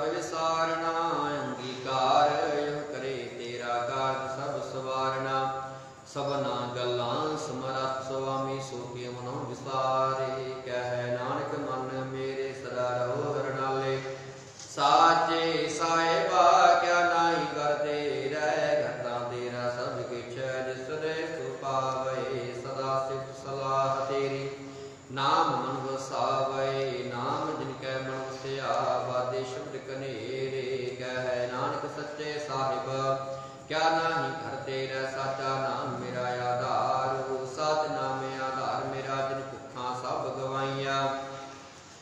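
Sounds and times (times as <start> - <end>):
man chanting melodically: 0.0 - 41.6.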